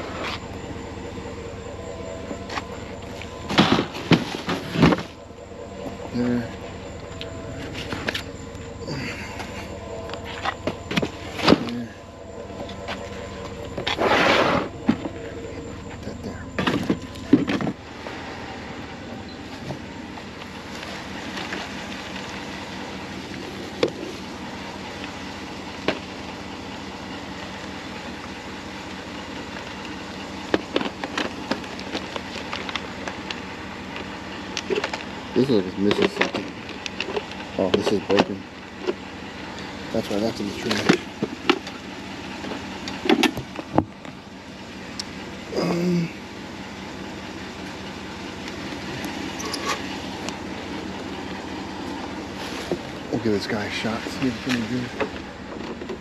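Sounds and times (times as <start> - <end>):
steady background hum: 0.0 - 56.0
plastic bin and panels clattering: 3.5 - 5.1.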